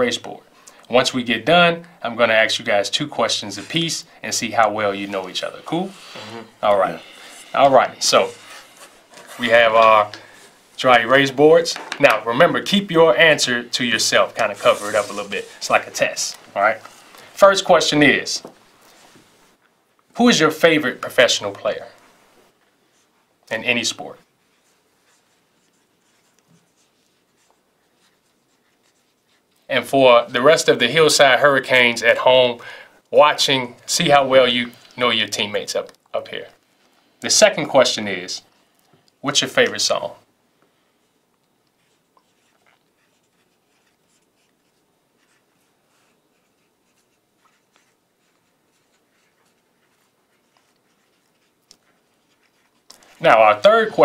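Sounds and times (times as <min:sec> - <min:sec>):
markers writing on whiteboards: 0:03.2 - 0:19.3, 0:22.9 - 0:29.8, 0:41.6 - 0:54.0.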